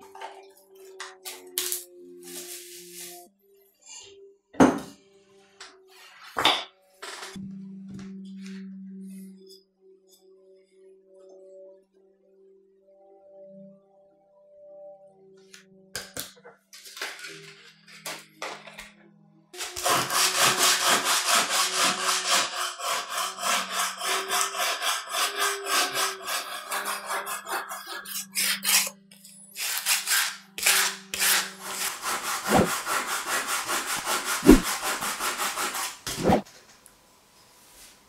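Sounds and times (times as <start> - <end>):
sandpaper rasping on wood: 19.6 - 29.0, 29.6 - 36.4.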